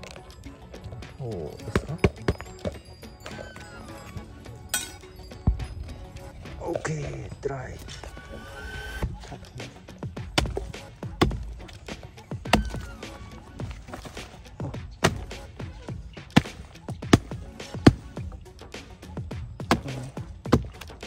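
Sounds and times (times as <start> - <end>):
chopping tool striking log: 10.2 - 15.5, 16.2 - 18.2, 19.6 - 21.0
wood splintering and crumbling: 10.2 - 18.2, 19.6 - 21.0.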